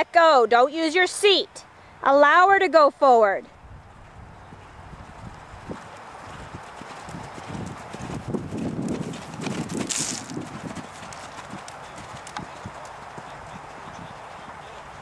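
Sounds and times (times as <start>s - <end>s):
horse hooves cantering on sand: 3.9s - 15.0s.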